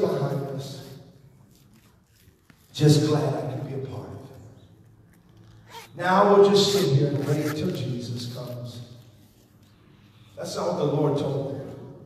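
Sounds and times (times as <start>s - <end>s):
man preaching into microphone: 0.0s - 1.1s, 2.7s - 4.5s, 5.9s - 9.0s, 10.4s - 12.0s.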